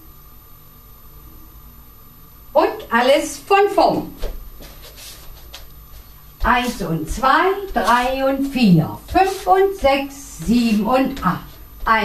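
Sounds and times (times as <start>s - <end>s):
faint soft scuffs: 4.1s - 12.0s
low hum: 5.7s - 12.0s.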